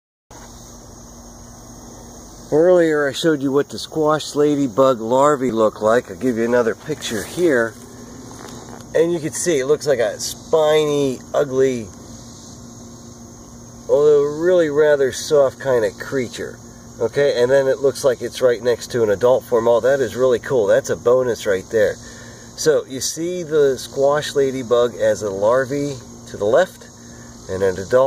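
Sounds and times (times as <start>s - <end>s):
steady low hum: 0.3s - 28.0s
faint even hiss: 1.8s - 18.6s.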